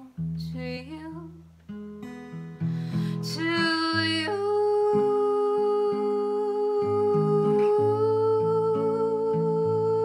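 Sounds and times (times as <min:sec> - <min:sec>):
acoustic guitar chords: 0:00.0 - 0:10.0
woman singing a long note: 0:03.4 - 0:10.0.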